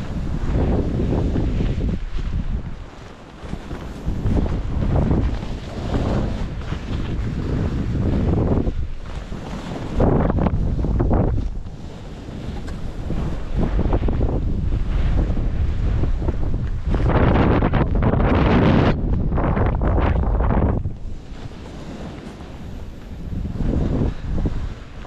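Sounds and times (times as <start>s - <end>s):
skis sliding over snow: 0.0s - 25.0s
wind buffeting microphone: 0.0s - 25.0s.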